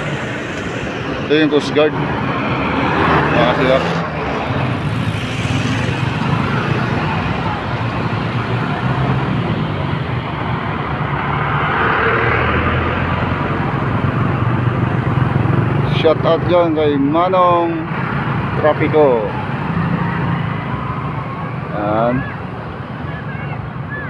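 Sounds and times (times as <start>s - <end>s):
street noise: 0.0s - 24.0s
vehicle engines humming: 0.0s - 24.0s.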